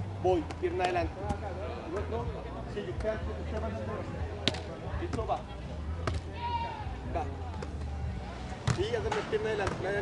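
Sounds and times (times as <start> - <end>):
hand slapping volleyball: 3.0 - 3.8, 4.4 - 5.3, 6.0 - 6.3.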